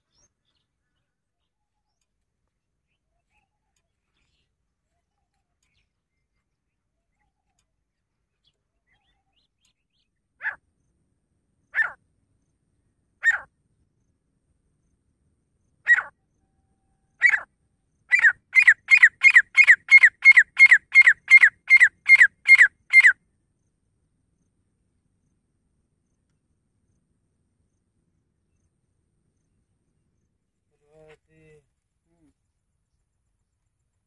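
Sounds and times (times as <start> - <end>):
bird calling: 17.2 - 17.5, 18.1 - 23.2.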